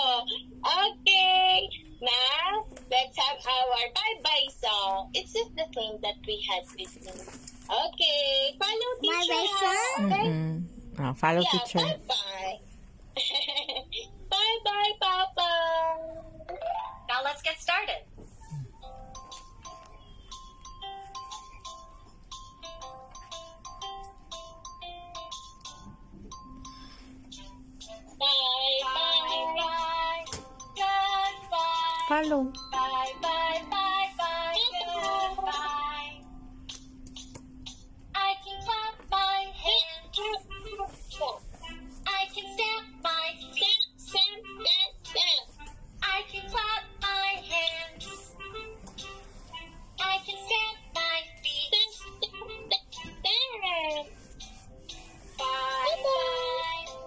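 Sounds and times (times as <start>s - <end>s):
children's song from a tablet: 0.0s - 10.2s, 11.2s - 57.0s.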